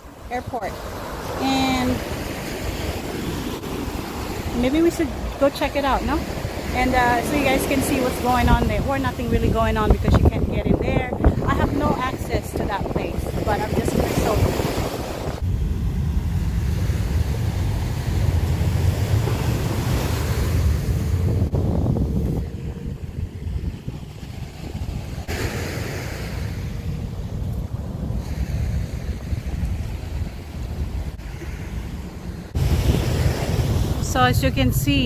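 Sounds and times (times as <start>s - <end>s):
surf washing on sandy beach: 0.0s - 35.0s
wind buffeting microphone: 0.0s - 35.0s.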